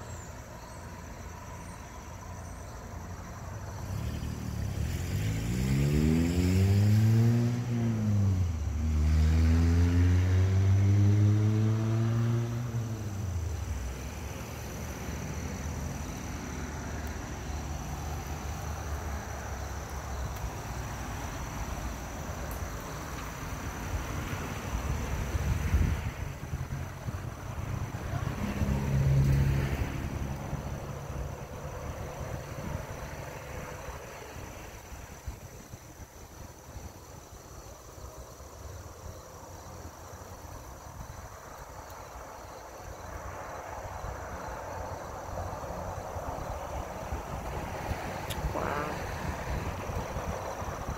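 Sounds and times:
vehicle engine accelerating: 3.6 - 35.7.

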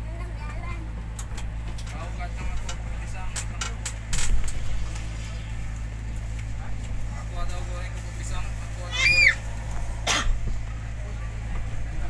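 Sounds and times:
low hum of ferry machinery: 0.0 - 12.0
passengers chattering: 0.0 - 12.0.

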